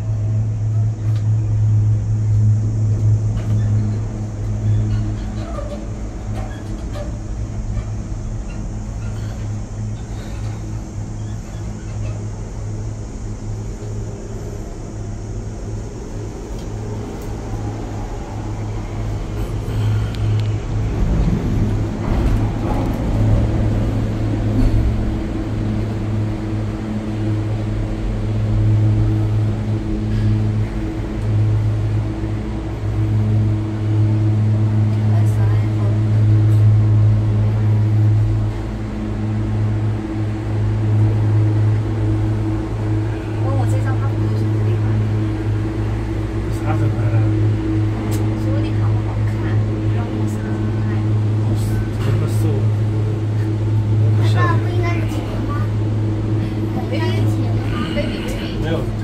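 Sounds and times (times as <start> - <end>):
low mechanical hum: 0.0 - 59.0.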